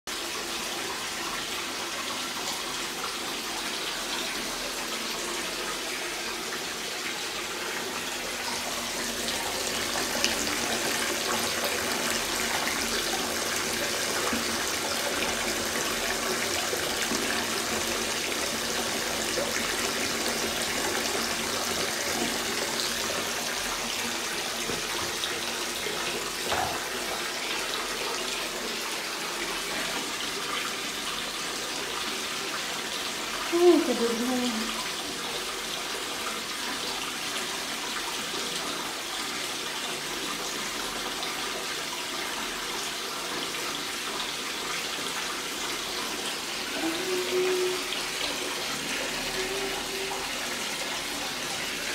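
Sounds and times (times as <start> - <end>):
water pouring into bath: 0.1 - 51.9.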